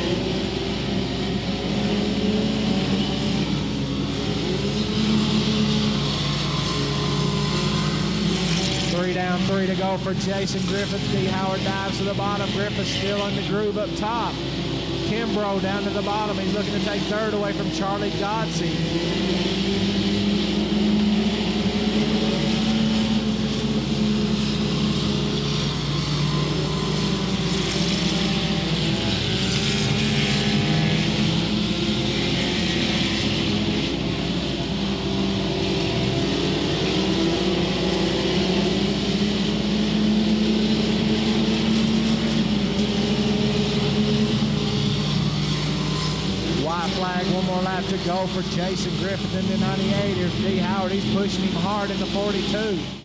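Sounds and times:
race car engines: 0:00.0 - 0:53.0.

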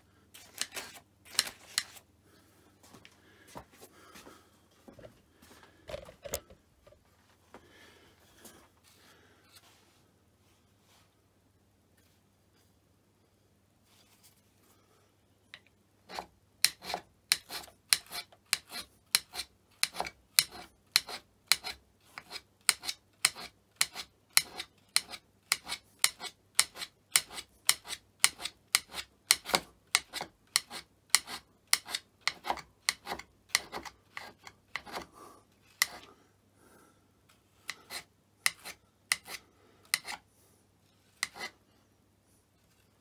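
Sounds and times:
hand scraper scraping cast iron: 0:16.1 - 0:35.1, 0:35.7 - 0:36.1, 0:37.6 - 0:40.2, 0:41.1 - 0:41.6.

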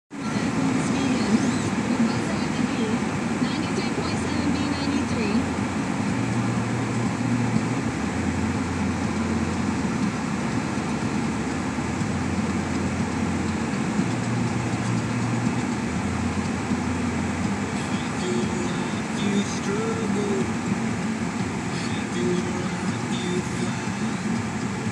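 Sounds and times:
car engine and tyre rumble: 0:00.1 - 0:24.9.

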